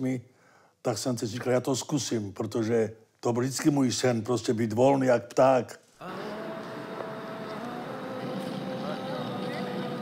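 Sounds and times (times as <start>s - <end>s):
faint voices of passers-by: 6.0s - 10.0s.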